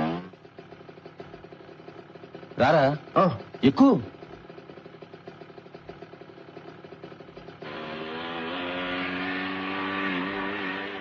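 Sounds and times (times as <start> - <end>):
motorcycle engine idling: 0.0 - 11.0
motorcycle pulling away: 0.0 - 11.0.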